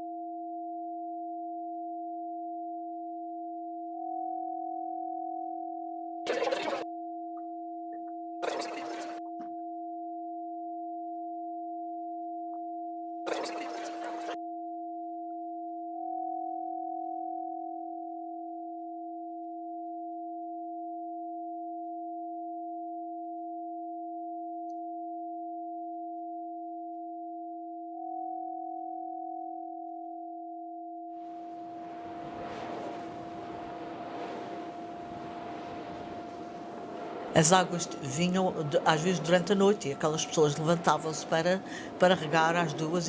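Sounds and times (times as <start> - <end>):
rushing noise: 31.2 - 43.0.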